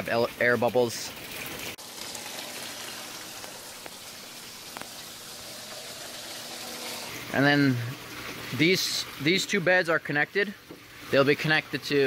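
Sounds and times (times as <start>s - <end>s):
water trickling and splattering: 0.0s - 12.0s.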